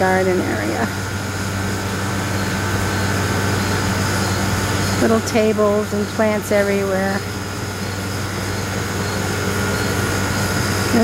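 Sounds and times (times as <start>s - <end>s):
air conditioner hum: 0.0s - 11.0s.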